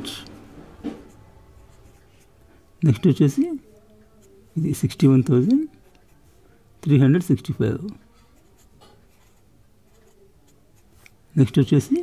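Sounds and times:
person speaking: 0:02.8 - 0:08.0, 0:09.9 - 0:12.0
ballpoint pen scratching on paper: 0:08.2 - 0:11.2.

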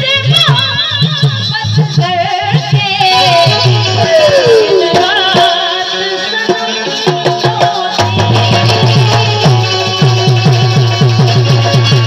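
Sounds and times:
fast hand drum beat: 0:06.5 - 0:12.0.

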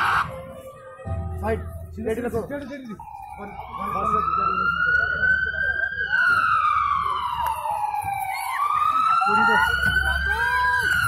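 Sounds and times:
siren wailing: 0:03.0 - 0:11.0.

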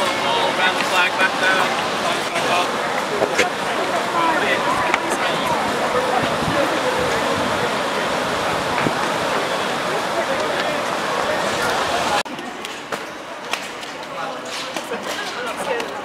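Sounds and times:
white water rushing through channel: 0:00.0 - 0:12.3
people's voices and shouts: 0:00.0 - 0:16.0.

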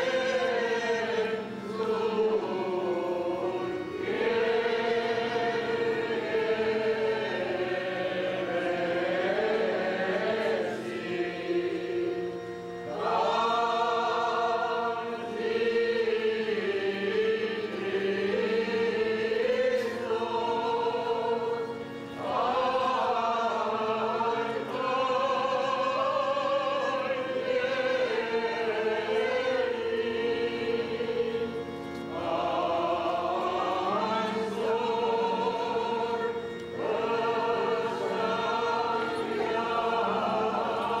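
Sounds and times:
choir chanting a hymn: 0:00.0 - 0:41.0.

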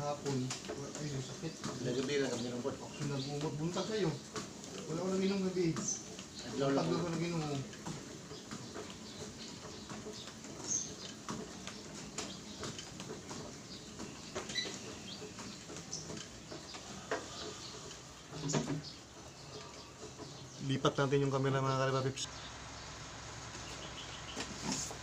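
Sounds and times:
treadmill knocks and clicks: 0:00.0 - 0:21.0.

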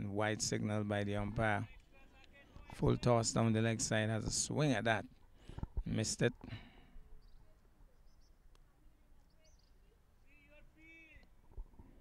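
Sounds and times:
faint high chirps: 0:07.0 - 0:10.4.

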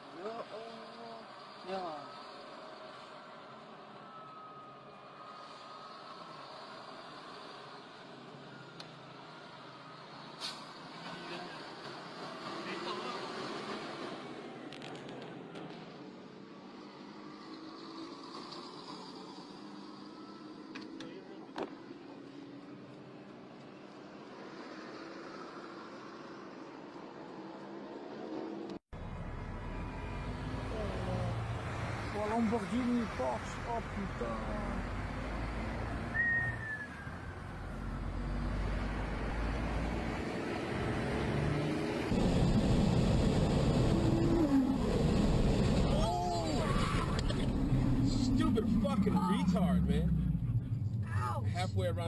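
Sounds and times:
car road and engine noise: 0:00.0 - 0:52.0
low vehicle rumble: 0:33.4 - 0:52.0.

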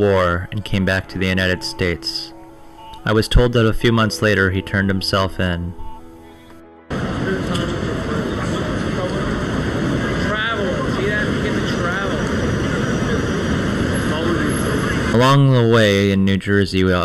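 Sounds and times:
faint voices: 0:06.9 - 0:15.5
traffic rumble: 0:06.9 - 0:15.7.

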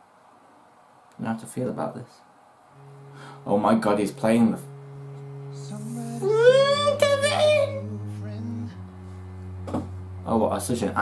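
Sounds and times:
cello playing low notes: 0:02.7 - 0:11.0.

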